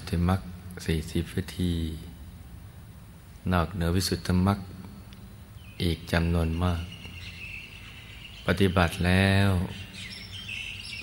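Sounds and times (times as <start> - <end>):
birds chirping faintly: 0.0 - 11.0.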